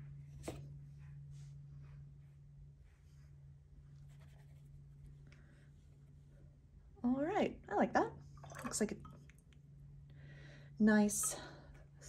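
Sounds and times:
low hum: 0.0s - 12.0s
brush scratching on paper: 4.0s - 5.0s.

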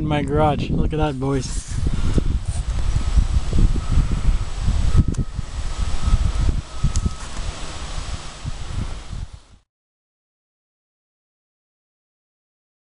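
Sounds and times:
wind buffeting microphone: 0.0s - 9.6s.

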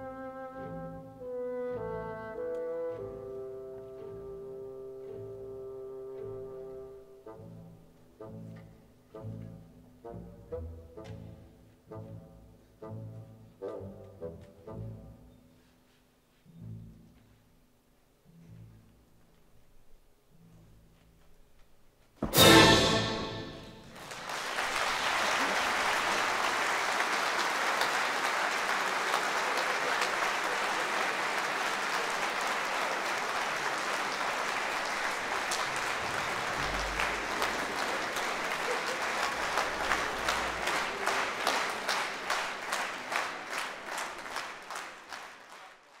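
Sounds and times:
audience applauding: 23.0s - 46.0s
rhythmic clapping in unison: 23.2s - 46.0s.

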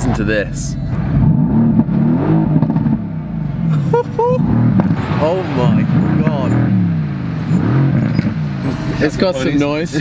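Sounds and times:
sports car engine accelerating: 0.8s - 10.0s.

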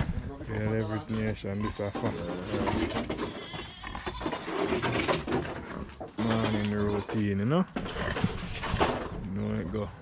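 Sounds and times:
farm animals calling: 0.4s - 8.6s.

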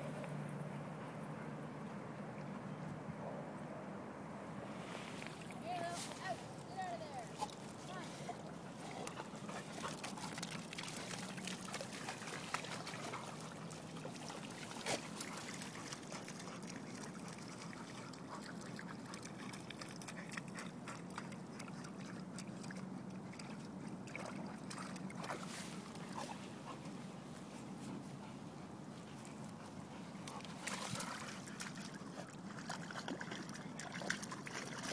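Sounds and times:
water splashing and sloshing: 4.7s - 28.0s, 28.9s - 34.9s
dog digging in muddy puddle: 5.2s - 34.9s.

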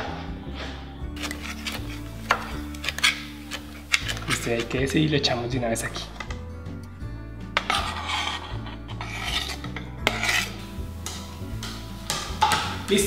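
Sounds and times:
faint background music: 0.0s - 13.0s
knife scraping on cutting board: 1.2s - 4.8s, 7.6s - 10.7s.

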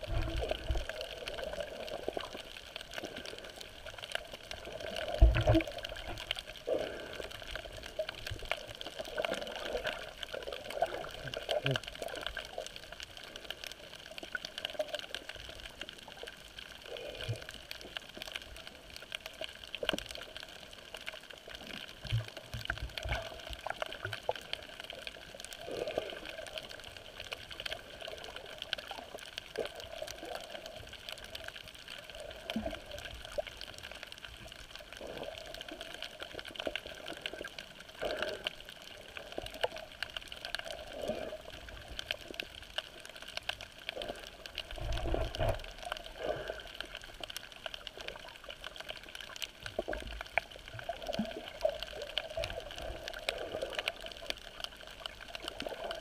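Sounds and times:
crackle of fine clicks: 0.0s - 56.0s
underwater wash with hum: 0.0s - 56.0s.

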